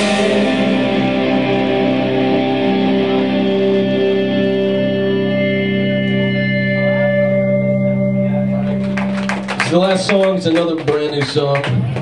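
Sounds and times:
higher tone: 0.0 - 10.4
distorted electric guitars chord: 0.0 - 10.9.

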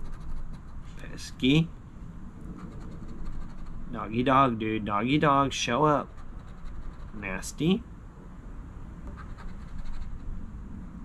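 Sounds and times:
scratching lottery ticket: 0.0 - 0.8, 2.6 - 3.8, 6.0 - 7.4, 9.2 - 10.2.

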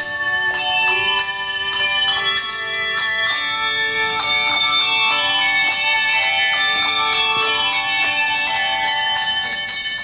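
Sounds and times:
handbell choir playing a melody: 0.0 - 10.0.

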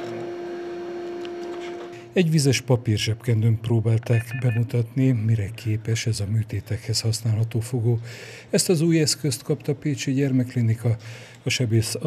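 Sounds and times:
steady activation beep: 4.1 - 4.7.

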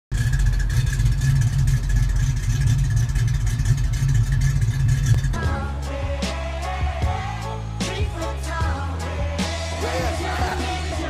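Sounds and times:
car engine low rumble: 0.1 - 7.8
music with a beat: 5.3 - 11.0.

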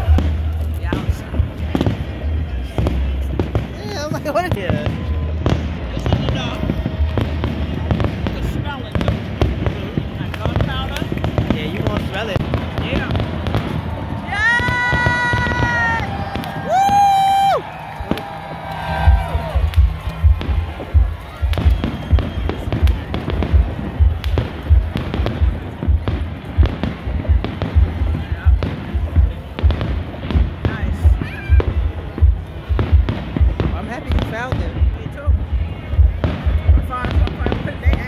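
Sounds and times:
fireworks bursting and crackling: 0.0 - 38.0
steady thumping beat: 0.0 - 38.0.

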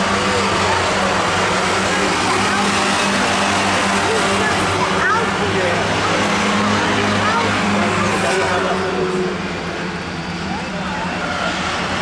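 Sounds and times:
people talking: 0.0 - 9.3, 10.4 - 12.0
racing car engines droning: 0.0 - 12.0.

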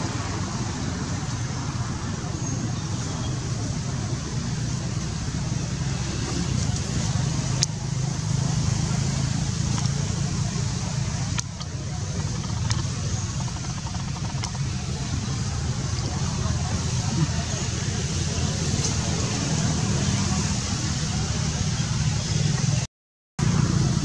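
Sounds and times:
low outdoor rumble: 0.0 - 22.8
sharp clicks: 11.0 - 16.0.

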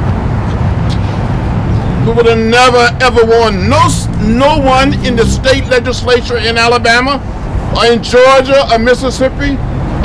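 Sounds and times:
low outdoor rumble: 0.0 - 9.7.

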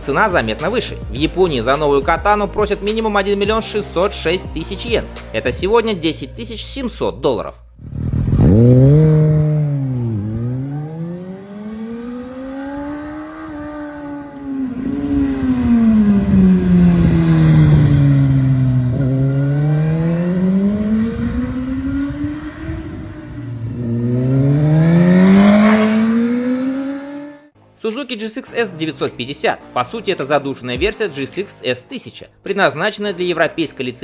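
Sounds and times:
motorcycle engine revving: 7.8 - 27.6.

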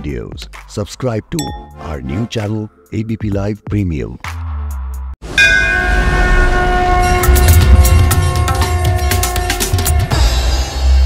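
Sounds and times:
bell-like hit: 1.4 - 1.8, 5.4 - 6.4.

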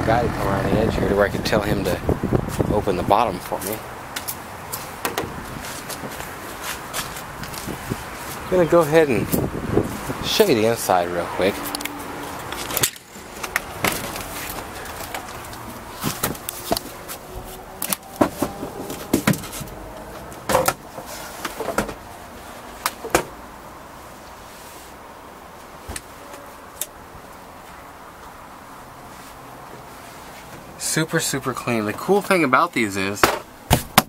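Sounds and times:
person climbing inside: 4.1 - 8.4, 12.4 - 22.1.

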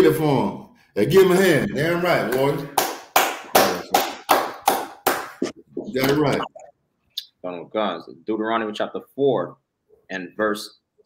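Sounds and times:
hand clapping: 2.2 - 6.3.

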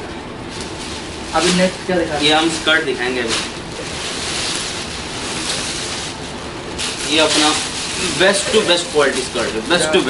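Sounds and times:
clothes being rummaged: 0.4 - 10.0
plastic bags rustling: 0.4 - 10.0.

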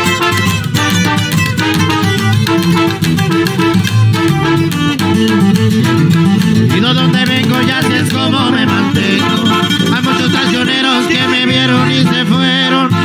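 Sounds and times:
strummed acoustic guitars: 0.0 - 13.0
trumpet melody: 0.0 - 13.0
tuba bass line: 0.0 - 13.0.

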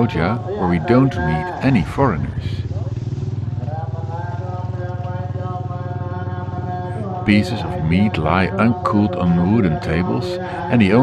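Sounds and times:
engine running with rapid pulse: 0.0 - 11.0.

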